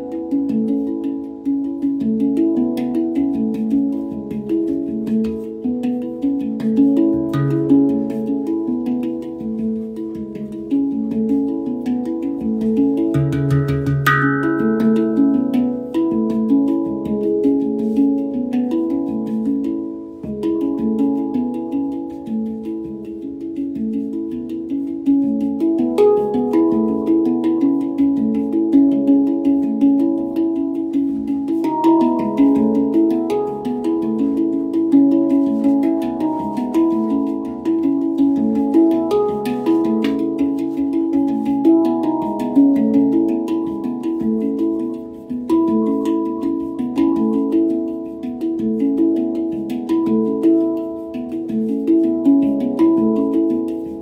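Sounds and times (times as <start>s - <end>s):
handpan ringing notes: 0.0s - 54.0s.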